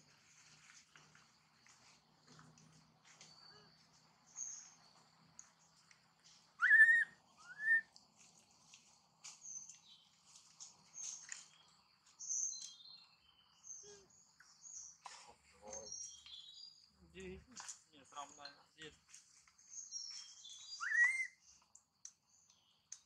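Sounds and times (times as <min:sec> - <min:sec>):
birds chirping and twittering: 0:00.2 - 0:23.0
loud rising falling bird calls: 0:06.6 - 0:07.9, 0:20.5 - 0:21.4.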